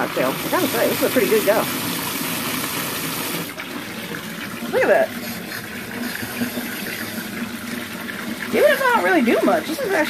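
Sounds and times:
faucet pouring into bathtub: 0.0s - 10.0s.

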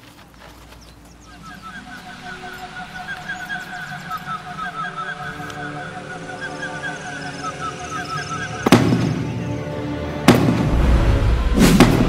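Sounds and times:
background music: 1.3s - 12.0s
loud impact hits: 10.3s - 12.0s.

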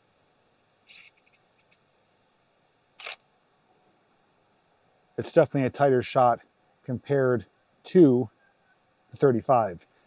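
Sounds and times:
camera shutter click: 3.0s - 3.2s.

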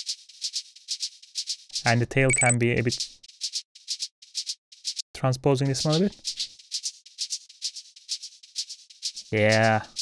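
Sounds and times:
shaker hits: 5.6s - 10.0s.

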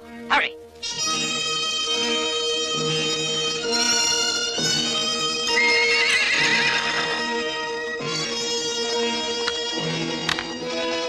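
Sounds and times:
orchestral film music: 0.0s - 11.0s
horse whinnying: 5.5s - 7.9s.

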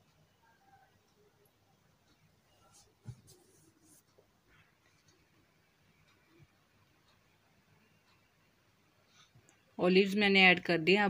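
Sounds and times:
faint scratchy rustling: 2.0s - 5.4s.

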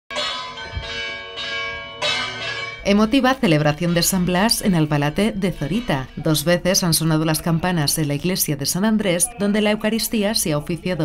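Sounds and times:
church bells ringing: 0.1s - 10.4s.

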